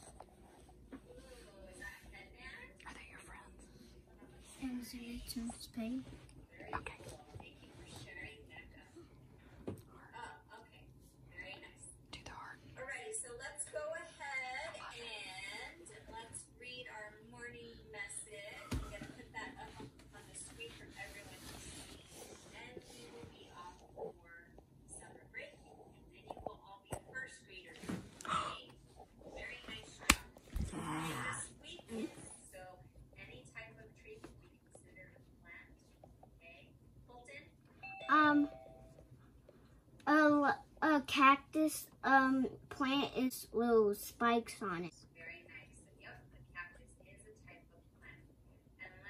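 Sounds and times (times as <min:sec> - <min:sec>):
faint whispered speech: 0:00.0 - 0:13.2.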